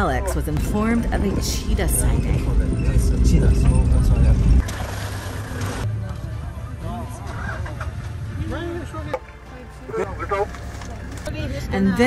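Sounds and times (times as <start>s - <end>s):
loud vehicle rumble inside cabin: 0.0s - 6.6s.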